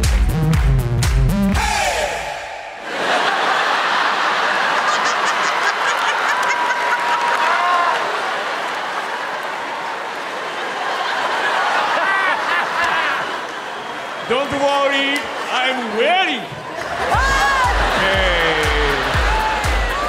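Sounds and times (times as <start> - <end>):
audience laughing and cheering: 1.6 - 20.0
people clapping: 3.0 - 20.0.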